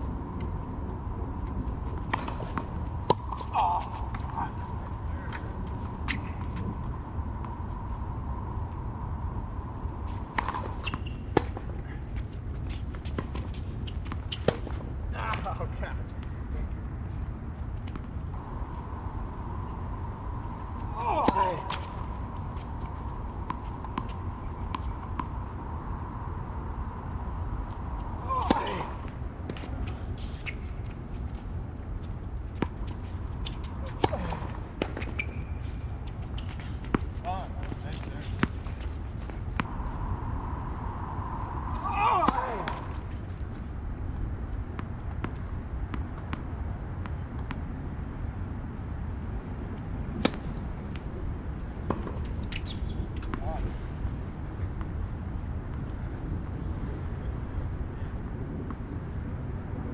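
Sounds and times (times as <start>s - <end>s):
tennis ball bouncing: 2.0s - 4.4s, 10.1s - 11.7s, 12.7s - 14.8s, 21.0s - 25.3s, 28.2s - 30.6s, 32.5s - 39.7s, 50.2s - 51.1s
shoe squeaks: 10.8s - 11.3s, 29.8s - 30.9s, 35.0s - 36.8s, 52.4s - 53.3s
low rumble: 16.6s - 45.2s
racket hitting tennis ball: 28.2s - 30.6s, 33.4s - 35.6s.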